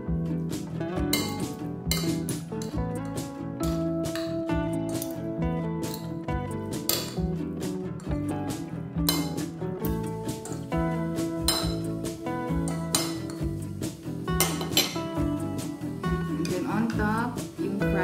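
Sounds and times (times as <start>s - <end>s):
background music: 0.0s - 18.0s
forks clinking on ceramic plate: 9.1s - 9.4s, 11.5s - 11.8s, 12.6s - 13.4s, 14.4s - 15.0s.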